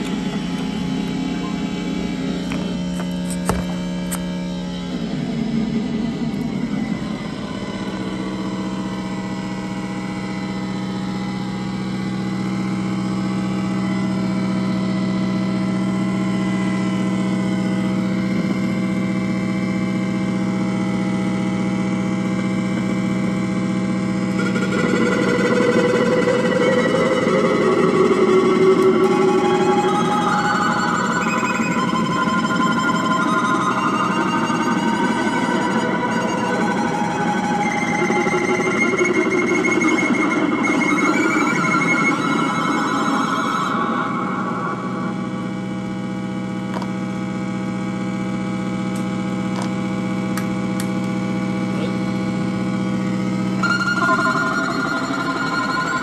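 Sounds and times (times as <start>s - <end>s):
low electronic drone: 0.0s - 56.0s.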